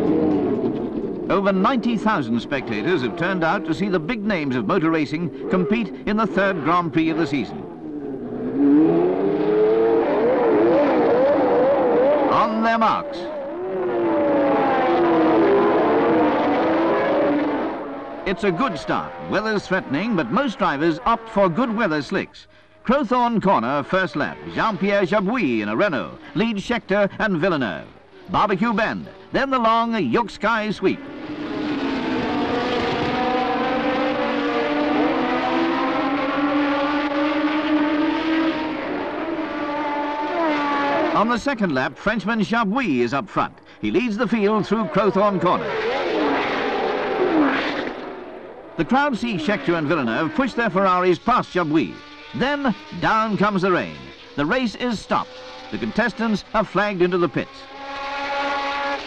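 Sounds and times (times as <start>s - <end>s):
race car engines accelerating: 0.0s - 59.0s.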